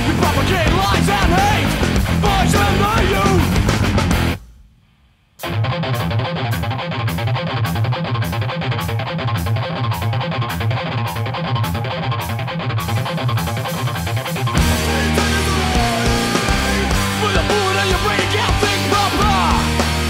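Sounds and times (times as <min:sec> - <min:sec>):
hardcore band music: 0:00.0 - 0:20.0.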